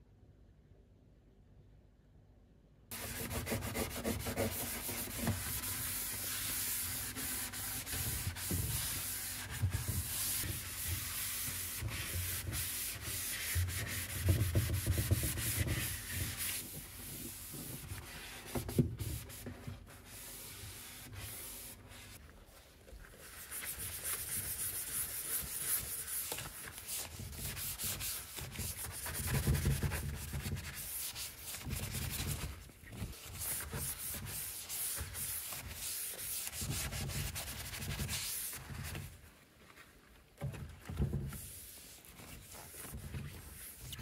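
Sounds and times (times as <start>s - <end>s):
cloth scrubbing plastic wall: 2.9s - 44.0s.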